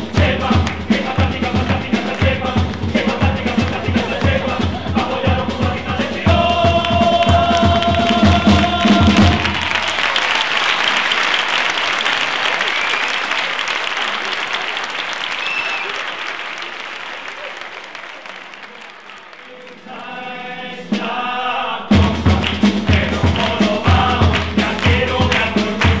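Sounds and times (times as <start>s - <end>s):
choir singing: 0.0s - 10.1s, 19.4s - 26.0s
drum beats: 0.0s - 11.6s, 19.6s - 26.0s
audience applause: 6.7s - 20.2s, 23.4s - 26.0s.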